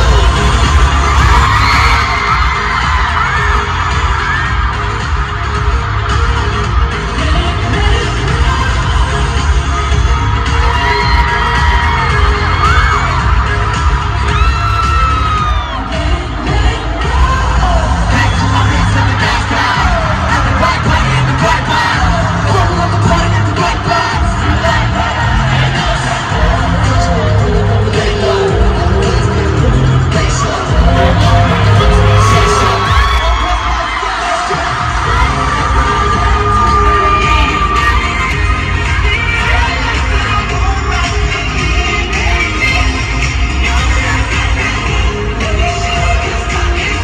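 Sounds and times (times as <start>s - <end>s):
fans screaming: 0.0s - 47.0s
pop dance music with thumping bass: 0.0s - 47.0s.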